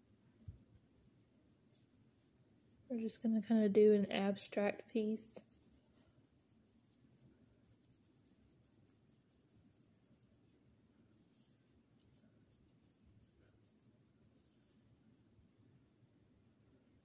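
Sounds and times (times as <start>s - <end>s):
paintbrush swishing on paper: 0.0s - 3.1s, 4.6s - 15.6s.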